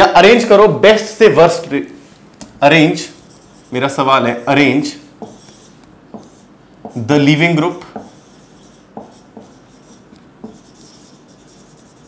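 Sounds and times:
marker scratching on whiteboard: 2.8 - 12.0.

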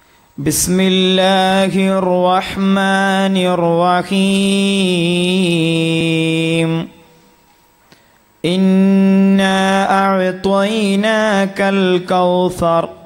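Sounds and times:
man chanting devotional praise: 0.4 - 7.1, 8.4 - 13.0.

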